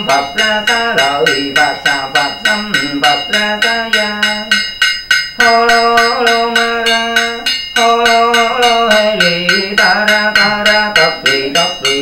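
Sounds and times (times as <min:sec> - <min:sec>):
man chanting: 0:00.0 - 0:04.7, 0:05.4 - 0:12.0
wooden fish struck steadily: 0:00.0 - 0:12.0.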